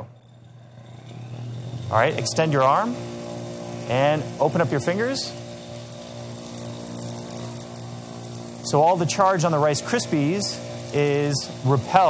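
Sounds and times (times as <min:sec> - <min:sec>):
generator motor hum with rising whine: 0:00.0 - 0:12.0.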